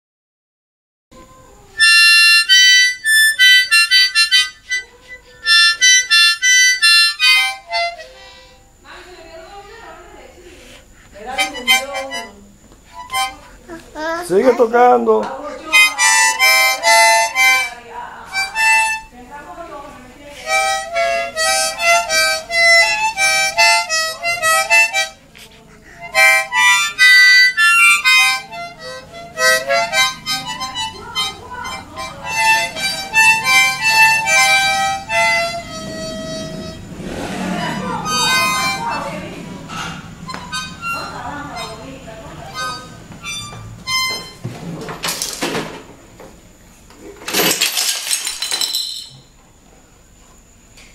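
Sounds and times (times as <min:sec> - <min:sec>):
child playing harmonica chords: 0:01.8 - 0:08.8, 0:11.2 - 0:14.8, 0:15.6 - 0:19.2, 0:20.4 - 0:44.4.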